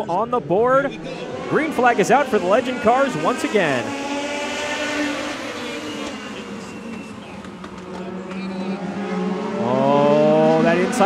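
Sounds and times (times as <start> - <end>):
race car engines at high revs: 0.0 - 11.0.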